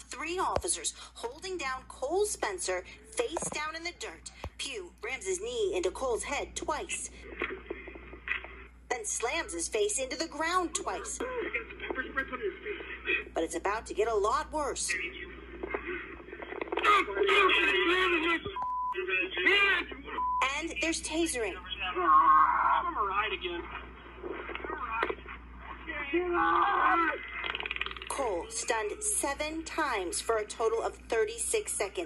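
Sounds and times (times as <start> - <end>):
muffled voice through tv speaker: 6.7 - 13.9, 14.5 - 30.9
men's raised voices: 15.1 - 20.3, 21.6 - 27.6.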